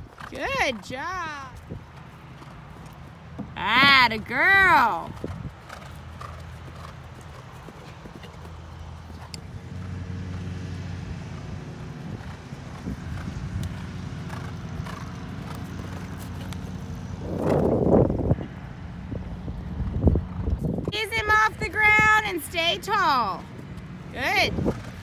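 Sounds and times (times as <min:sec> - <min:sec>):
horse hoofbeats on grass: 0:00.0 - 0:18.6.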